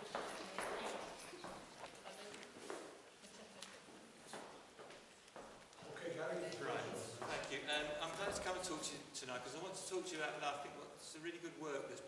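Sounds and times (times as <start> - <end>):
faint footsteps: 0.0 - 8.8.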